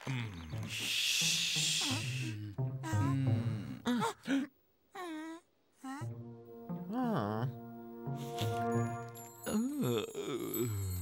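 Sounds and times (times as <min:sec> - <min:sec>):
background music: 0:00.3 - 0:04.1, 0:05.9 - 0:11.0.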